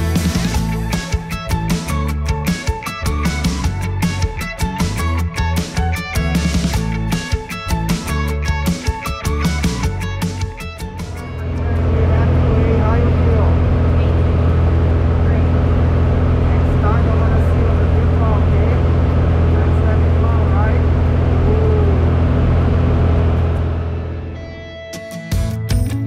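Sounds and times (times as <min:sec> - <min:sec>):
music: 0:00.0 - 0:26.0
propeller plane engine drone: 0:06.3 - 0:24.8.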